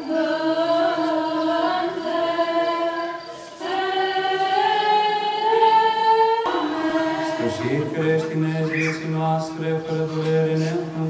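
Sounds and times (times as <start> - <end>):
choir chanting unaccompanied: 0.0 - 11.0.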